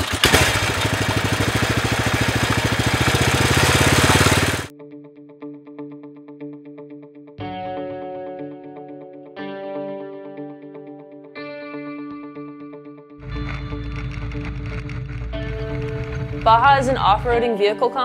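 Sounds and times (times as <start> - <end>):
small engine running hard: 0.0 - 4.7, 13.2 - 17.4
guitar music with effects: 4.7 - 18.0.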